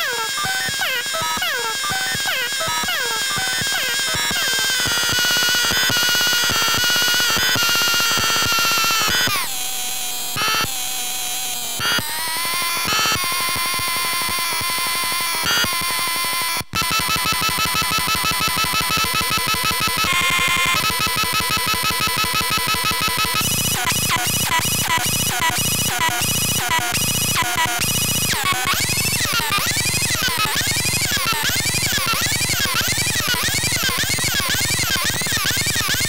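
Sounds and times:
toy phone buzzy electronic tones: 0.0 - 9.6, 10.3 - 10.8, 11.8 - 36.0.

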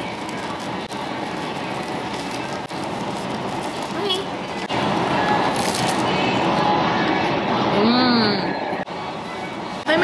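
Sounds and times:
steady noisy background: 0.0 - 10.0.

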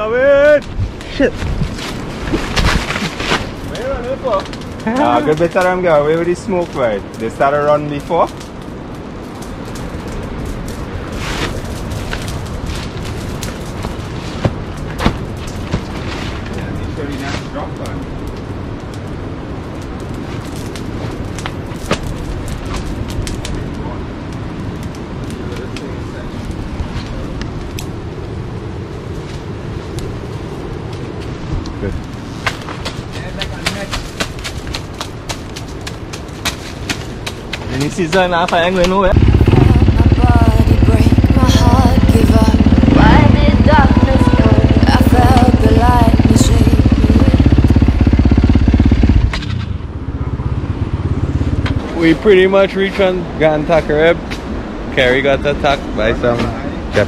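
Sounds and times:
steady rushing flame: 0.0 - 57.0
torch fire crackling: 0.0 - 57.0
sharp pops and cracks: 0.4 - 28.0, 30.9 - 39.4.

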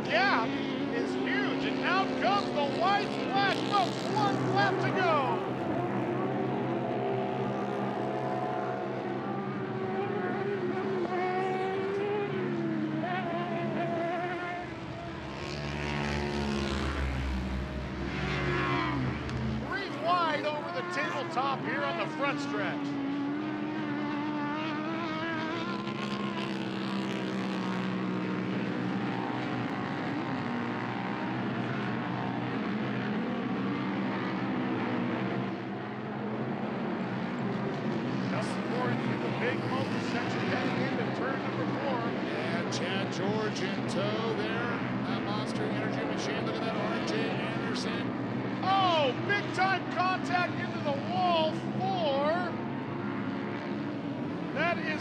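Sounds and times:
race engines revving: 0.0 - 55.0.

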